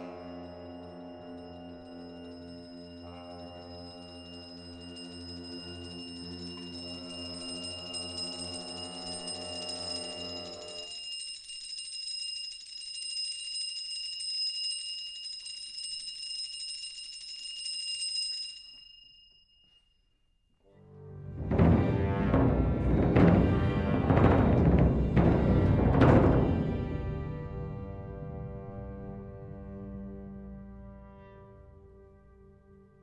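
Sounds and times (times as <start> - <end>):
low sustained pitched tones: 0.0 - 10.9
metallic percussion roll: 0.0 - 17.8, 21.3 - 27.6.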